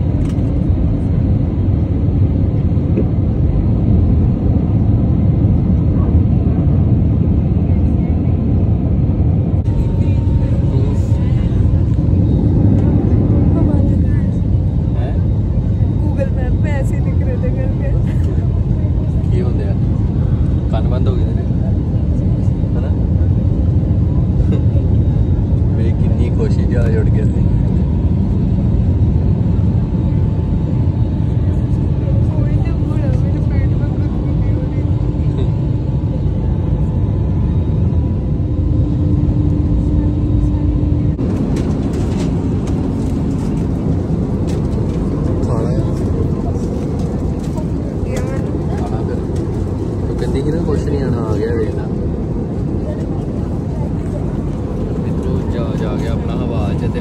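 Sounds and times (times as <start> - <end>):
jet cabin engine rumble: 0.0 - 57.0.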